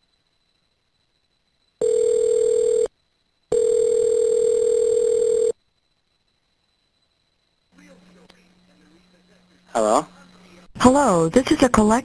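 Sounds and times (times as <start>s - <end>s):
telephone ringback tone: 1.8s - 2.9s, 3.5s - 5.6s.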